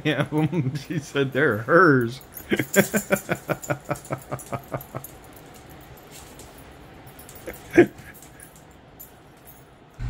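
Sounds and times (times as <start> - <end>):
dog collar tags jingling: 1.2 - 10.0
person laughing: 2.4 - 5.1, 7.4 - 8.2.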